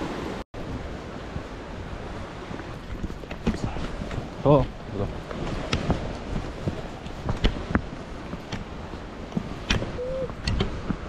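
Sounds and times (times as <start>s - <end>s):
sea surf: 0.0s - 11.0s
wind on microphone: 0.0s - 11.0s.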